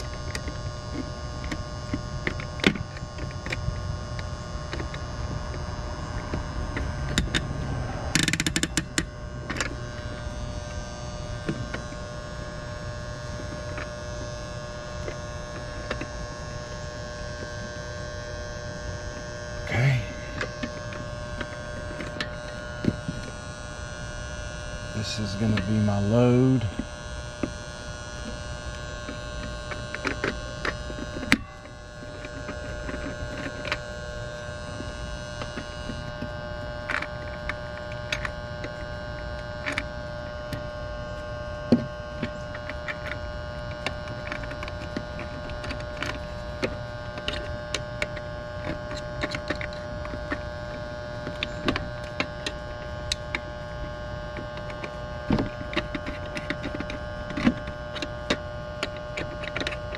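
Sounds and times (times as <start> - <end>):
electrical hum: 0.0 - 59.9
clicks and scrapes of wire nuts: 42.2 - 53.4, 54.4 - 59.9.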